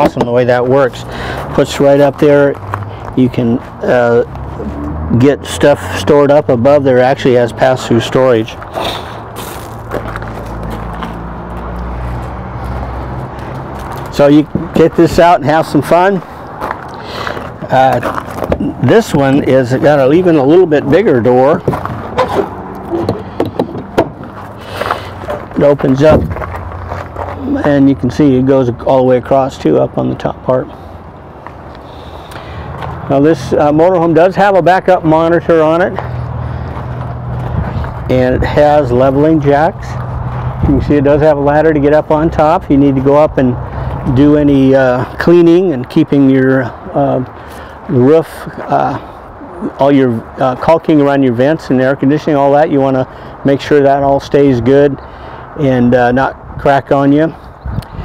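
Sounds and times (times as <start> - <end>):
footsteps on gravel: 0.0 - 3.8, 8.4 - 27.8, 31.3 - 33.0, 35.8 - 39.4
outdoor background noise: 0.0 - 58.0.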